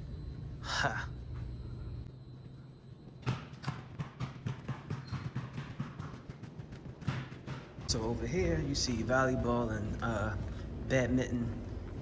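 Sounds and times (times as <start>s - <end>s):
quick footsteps on hard floor: 3.3s - 8.6s.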